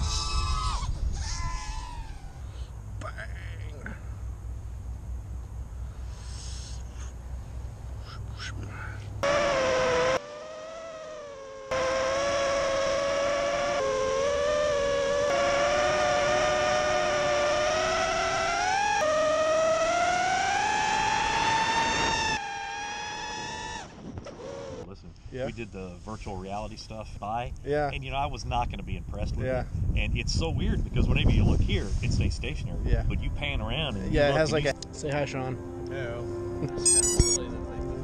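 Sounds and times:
quadcopter motors whining: 9.2 - 24.9, 36.6 - 37.4.

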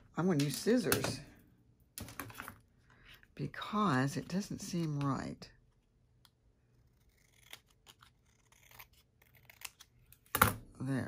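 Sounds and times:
scissors snipping paper: 6.2 - 10.4.

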